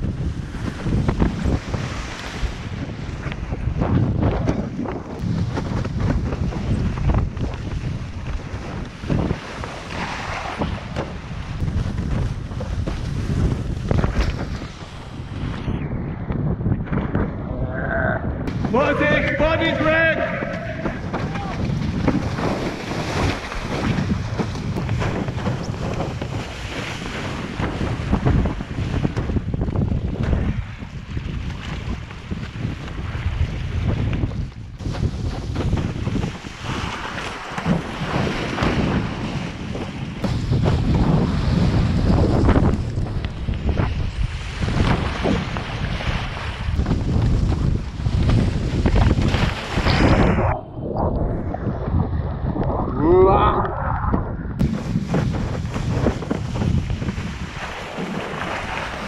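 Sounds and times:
wind buffeting microphone: 0:00.0 - 0:59.0
water rushing and splashing: 0:18.4 - 0:28.6, 0:40.1 - 0:59.0.

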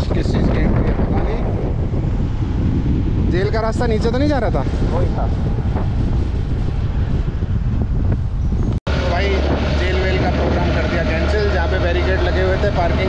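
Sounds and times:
men talking: 0:00.0 - 0:01.6, 0:03.2 - 0:05.6, 0:08.9 - 0:13.0
wind buffeting microphone: 0:00.0 - 0:13.0.

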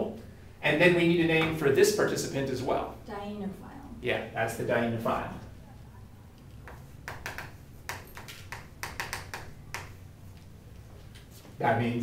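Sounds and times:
chalk tapping and scratching: 0:06.6 - 0:10.0.

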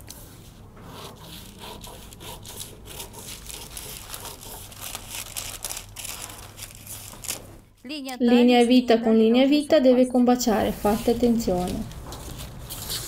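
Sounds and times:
scissors snipping tissue paper: 0:01.4 - 0:07.5
tissue paper crinkling: 0:02.9 - 0:07.7.

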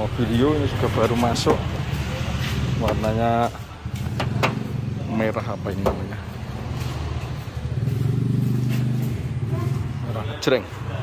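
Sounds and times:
car engine idling: 0:00.0 - 0:10.4.

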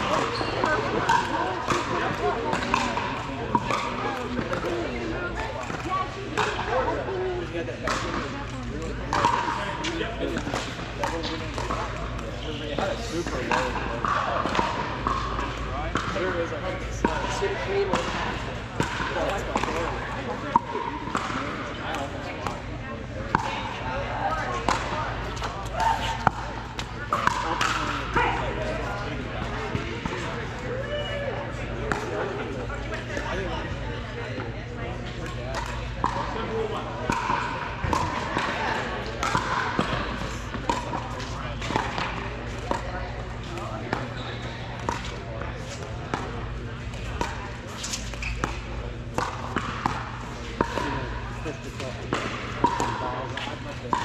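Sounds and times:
ball bouncing on court: 0:00.0 - 0:30.6, 0:31.6 - 0:32.1, 0:35.0 - 0:54.0
background chatter: 0:00.0 - 0:54.0
paddles hitting plastic ball: 0:00.1 - 0:04.8, 0:44.8 - 0:51.0, 0:51.7 - 0:54.0.

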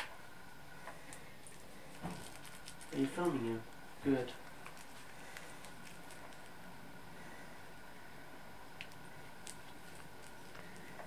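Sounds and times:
steady low hiss: 0:00.0 - 0:11.0
kitten clawing toy rustling: 0:01.4 - 0:03.4, 0:04.4 - 0:06.6.

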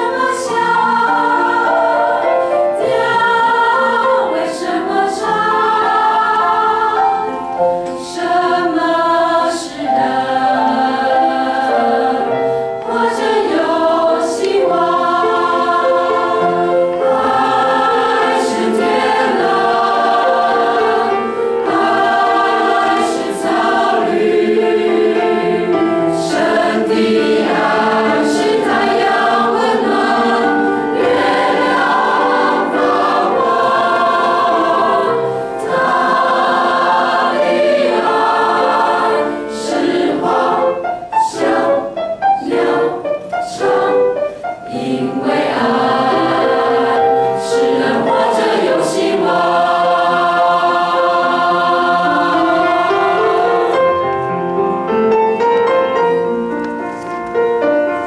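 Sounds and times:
mixed choir singing a hymn: 0:00.0 - 0:56.3.

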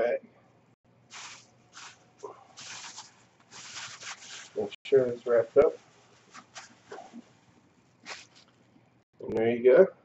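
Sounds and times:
plastic bag rustling: 0:01.1 - 0:08.7.

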